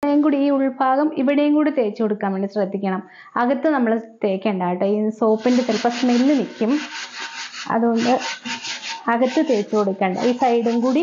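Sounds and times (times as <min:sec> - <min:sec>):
scrubbing a metal pot: 0:05.4 - 0:11.0.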